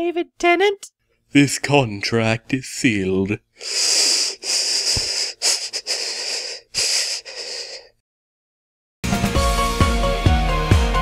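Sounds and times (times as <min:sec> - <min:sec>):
person wheezing: 0:03.6 - 0:08.0.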